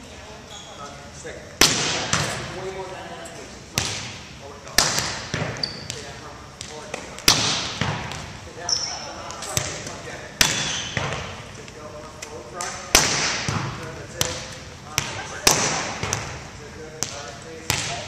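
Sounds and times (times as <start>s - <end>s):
volleyball hits echoing: 1.6s - 2.7s, 3.7s - 8.4s, 9.2s - 11.5s, 12.5s - 18.0s.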